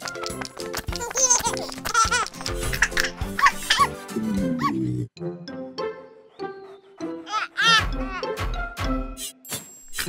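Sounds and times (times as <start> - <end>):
bouncy background music: 0.0 - 9.8
cartoon baby giggling: 0.9 - 4.0, 7.2 - 8.4.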